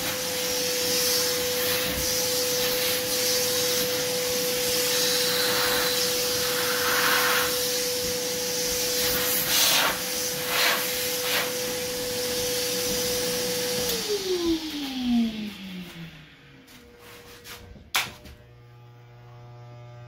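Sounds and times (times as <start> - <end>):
hair vacuum hose humming: 0.0 - 20.0.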